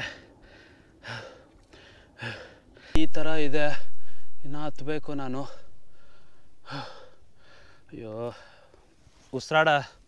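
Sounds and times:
man breathing hard: 0.0 - 3.0, 3.8 - 4.4, 5.5 - 8.9.

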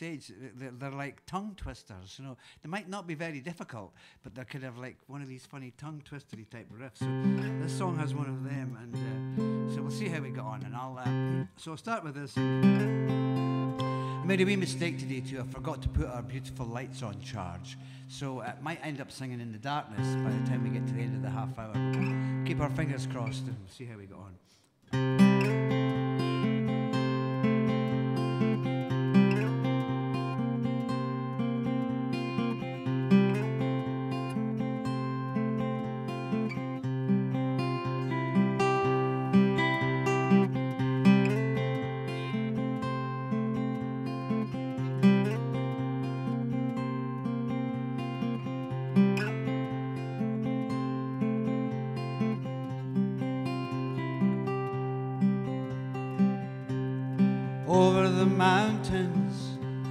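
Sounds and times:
acoustic guitar picking a riff: 7.0 - 11.6, 12.4 - 19.0, 19.9 - 23.6, 24.9 - 59.9.

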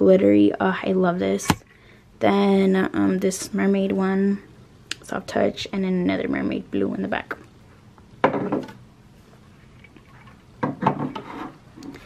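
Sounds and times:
tumblers scraping on wooden shelf: 10.9 - 11.6.

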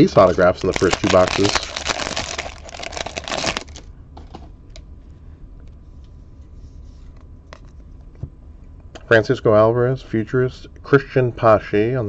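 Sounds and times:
wrapper tearing and rustling: 0.2 - 3.9.

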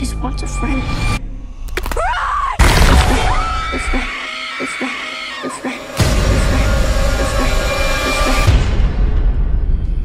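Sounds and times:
trailer sound design: 5.9 - 10.0.

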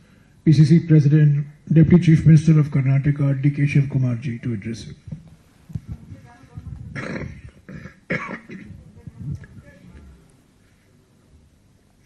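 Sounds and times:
coughs into a microphone: 6.8 - 8.9.

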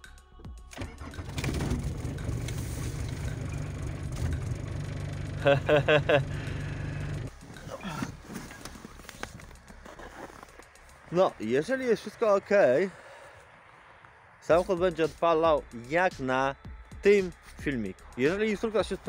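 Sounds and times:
diesel engine cranking and running: 0.7 - 7.6.

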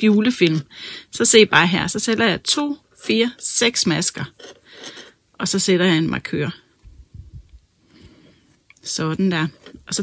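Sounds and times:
knitting needle and yarn handling: 0.0 - 10.0.

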